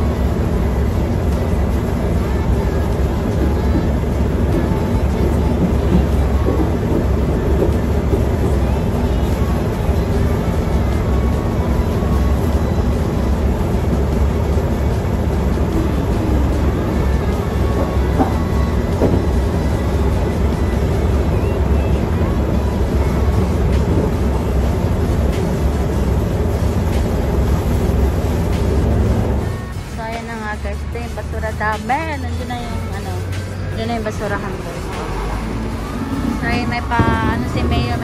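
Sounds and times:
low mechanical rumble: 0.0 - 38.0.

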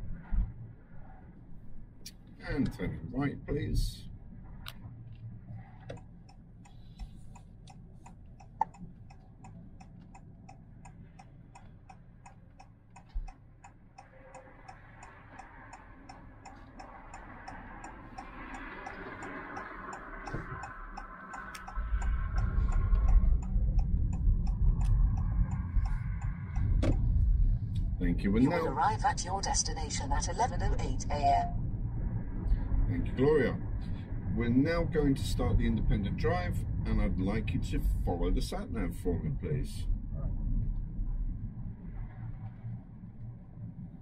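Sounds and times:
car engine and road noise: 0.0 - 44.0
turn signal ticking: 5.8 - 28.7.

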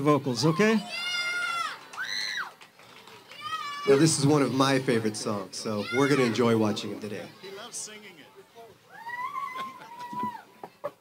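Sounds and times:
children squealing: 3.3 - 4.3, 5.6 - 6.5, 8.9 - 10.6.

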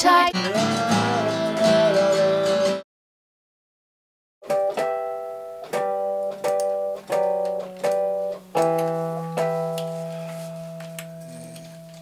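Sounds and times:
guitar and keyboard chord ringing: 0.3 - 2.8, 4.4 - 12.0.

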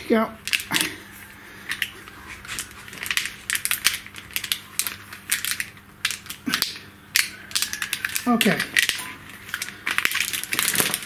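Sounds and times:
plastic conduit crackling and rustling: 0.0 - 11.0.

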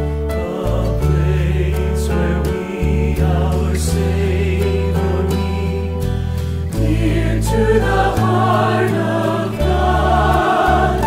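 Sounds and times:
recorded hymn singing: 0.0 - 11.0.

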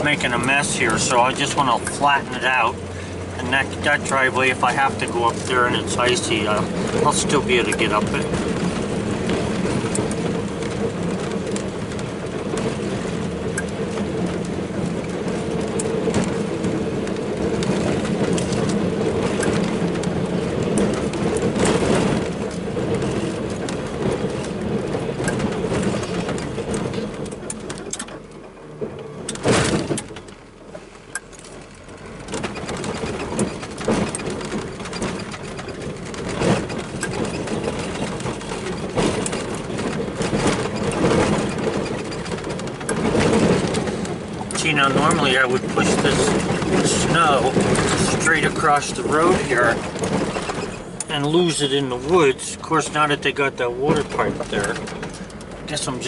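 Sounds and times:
knocks and rattles: 0.0 - 56.0
truck engine running under load: 0.0 - 56.0.

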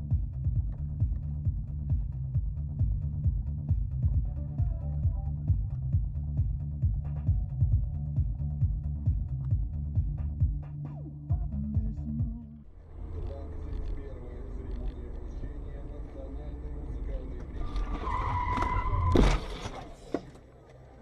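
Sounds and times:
car road and engine noise: 0.0 - 10.5, 12.6 - 21.0
electronic music with a beat: 0.0 - 12.6
tyre squeal: 13.5 - 20.4
loud car crash: 16.6 - 20.4.

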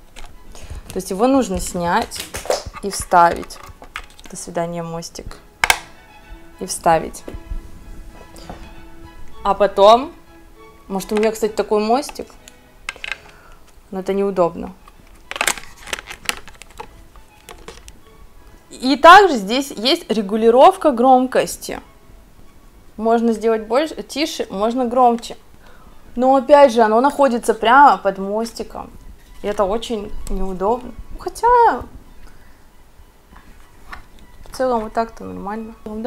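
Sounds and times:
breath in: 13.3 - 13.6
hands handling electric violin: 14.8 - 18.0.

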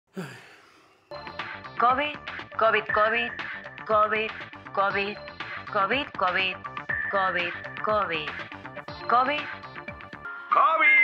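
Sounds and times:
man sighing: 0.1 - 1.1
television music: 1.1 - 11.0
television voice: 10.5 - 11.0.

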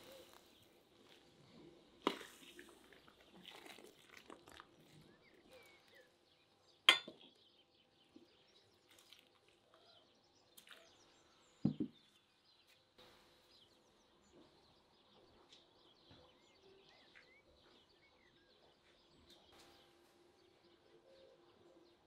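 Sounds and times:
metal skimmer clinking on bowl: 6.9 - 7.1.

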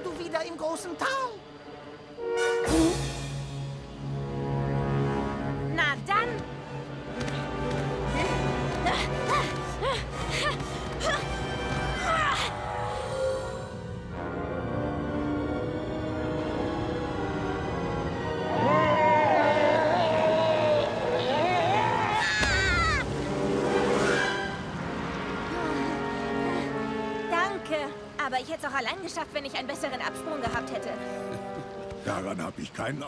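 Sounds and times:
orchestral music: 0.0 - 32.6
churning water rushing: 22.7 - 29.4.

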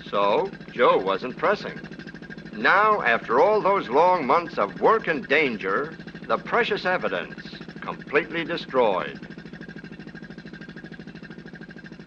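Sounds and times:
machine chugging: 0.0 - 12.0.

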